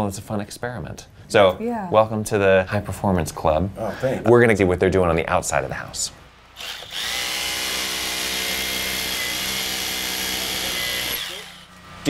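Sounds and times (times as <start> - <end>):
hammer drill boring into brick: 6.6 - 11.7.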